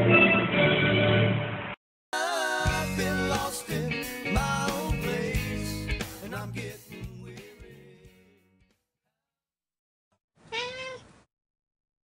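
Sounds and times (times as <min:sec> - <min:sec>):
cat meow: 0:10.4 - 0:11.2.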